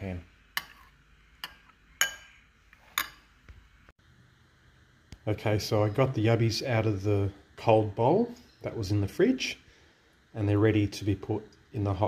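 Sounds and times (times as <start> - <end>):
spoon clinking against bowl: 0.6 - 3.3.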